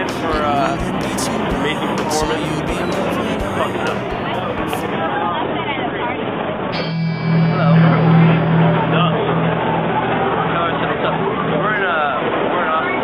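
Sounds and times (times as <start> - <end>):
steady low hum: 6.8 - 12.5.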